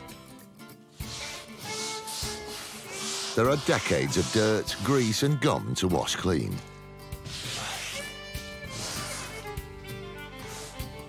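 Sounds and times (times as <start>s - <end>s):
background music with held notes: 0.0s - 11.0s
scouring pad scrubbing wood: 1.0s - 5.5s, 7.2s - 9.6s.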